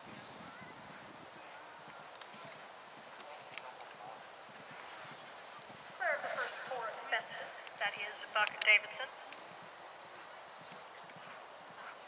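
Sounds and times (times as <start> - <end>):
horse hoofbeats galloping: 5.5 - 12.0.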